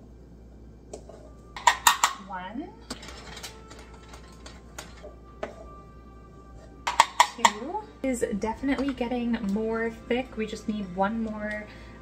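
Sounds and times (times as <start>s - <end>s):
spoon stirring dough in glass bowl: 3.0s - 5.8s.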